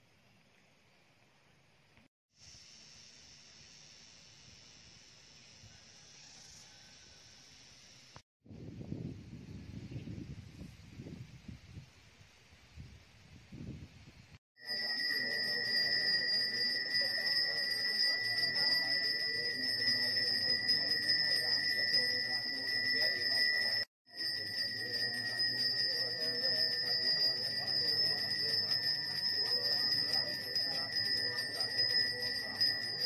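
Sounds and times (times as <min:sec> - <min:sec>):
hand bell ringing: 0:14.6 - 0:33.0
murmur of voices: 0:24.4 - 0:33.0.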